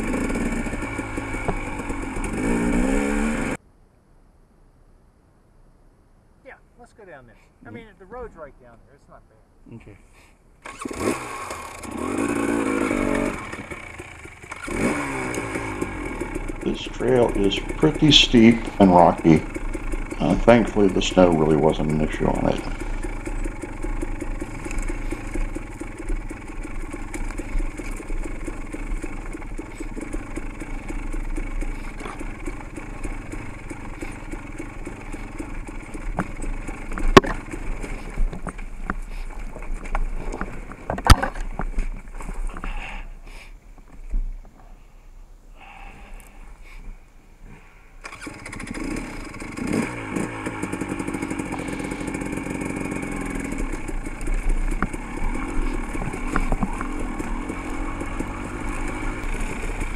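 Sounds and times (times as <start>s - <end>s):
dirt bike engine running: 0.0s - 3.6s, 10.6s - 43.0s, 48.0s - 59.9s.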